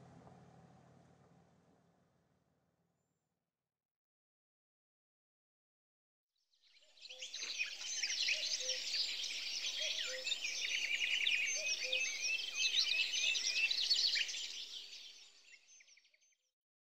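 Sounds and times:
songbirds chirping: 6.8s - 16.2s.

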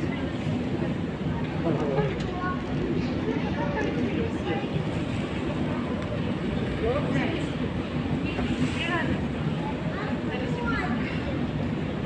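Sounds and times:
escalator mechanical rumble: 0.0s - 12.0s.

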